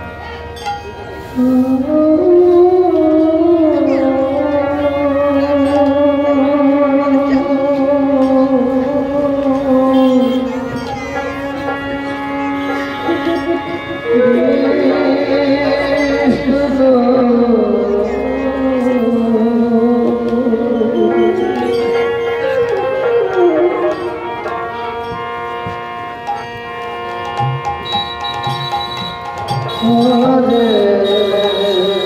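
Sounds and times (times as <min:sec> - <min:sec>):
harmonium drone: 0:00.0 - 0:32.0
violin: 0:00.0 - 0:32.0
man singing ornamented lines: 0:13.0 - 0:22.0, 0:29.7 - 0:32.0
drums: 0:21.3 - 0:32.0.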